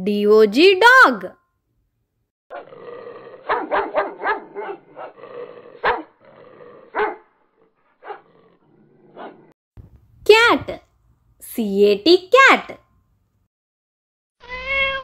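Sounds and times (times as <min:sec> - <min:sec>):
dogs growling: 0:02.5 - 0:09.6
dogs barking: 0:03.4 - 0:05.2, 0:05.8 - 0:06.2, 0:06.9 - 0:07.3, 0:07.9 - 0:08.4, 0:09.1 - 0:09.5.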